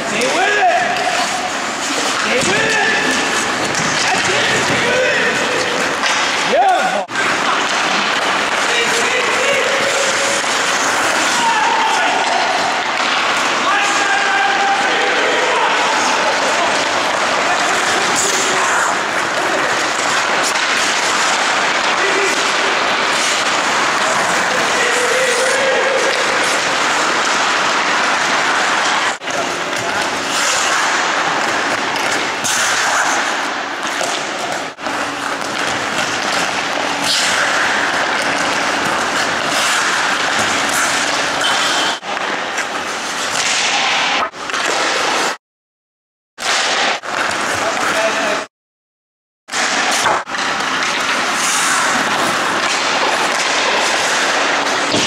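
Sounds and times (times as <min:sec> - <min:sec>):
hockey sticks striking pucks: 0:00.0 - 0:45.4, 0:46.4 - 0:48.5, 0:49.5 - 0:55.0
skate blades scraping ice: 0:00.0 - 0:45.4, 0:46.4 - 0:48.5, 0:49.5 - 0:55.0.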